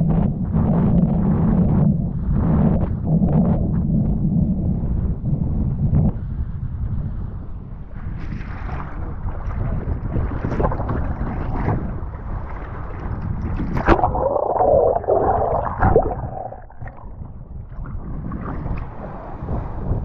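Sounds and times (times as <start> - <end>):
wind buffeting microphone: 0.0 - 20.0
board slapping over water: 8.0 - 20.0
underwater rushing and gurgling: 8.0 - 20.0
water splashes: 8.2 - 19.9.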